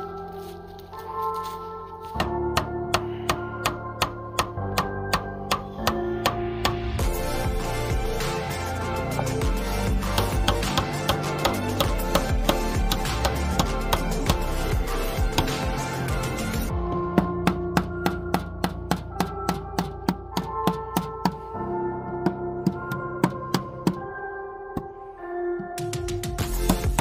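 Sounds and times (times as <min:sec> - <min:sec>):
background music with percussive beat: 0:02.2 - 0:21.5, 0:25.6 - 0:27.0.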